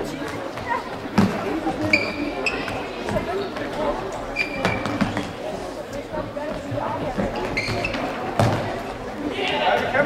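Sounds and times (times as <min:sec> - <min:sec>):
shouting and chatter in a hall: 0:00.0 - 0:10.0
shoes squeaking on floor: 0:01.7 - 0:03.3, 0:04.2 - 0:05.4, 0:07.1 - 0:08.6.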